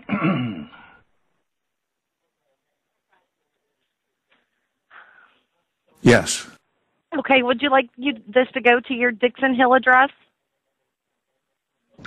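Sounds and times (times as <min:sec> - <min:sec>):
man clearing his throat: 0:00.0 - 0:00.9.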